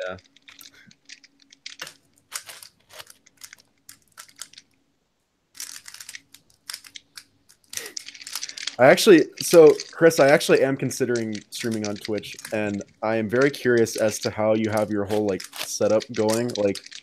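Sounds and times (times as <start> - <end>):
puzzle cube layers clicking: 0.0 - 4.8, 5.5 - 17.0.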